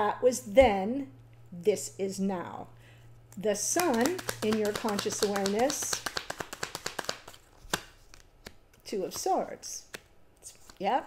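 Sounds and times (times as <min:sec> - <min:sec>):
cards being shuffled: 0:03.5 - 0:11.0.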